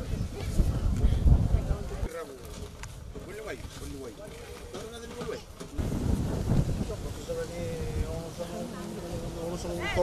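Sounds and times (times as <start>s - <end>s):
people talking: 6.7s - 10.0s.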